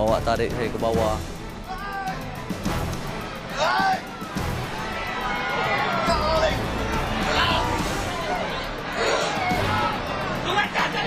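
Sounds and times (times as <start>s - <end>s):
background music: 0.0s - 11.0s
people struggling and shouting: 1.6s - 11.0s
loud shout: 1.7s - 2.2s, 3.5s - 4.2s, 5.0s - 11.0s.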